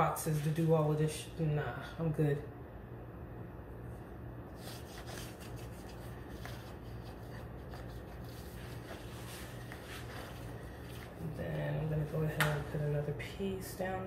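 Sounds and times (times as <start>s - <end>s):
steady low hum: 0.0s - 14.0s
tape rustling and scraping: 4.5s - 11.4s
person speaking: 10.0s - 14.0s.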